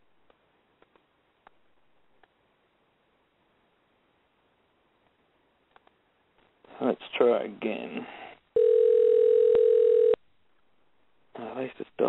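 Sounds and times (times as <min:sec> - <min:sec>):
faint scattered clicks: 0:05.0 - 0:06.5.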